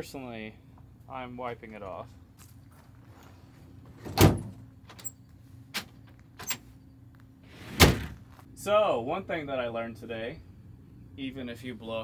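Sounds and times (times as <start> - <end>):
tailgate slamming shut: 4.0 - 4.6, 7.6 - 8.2.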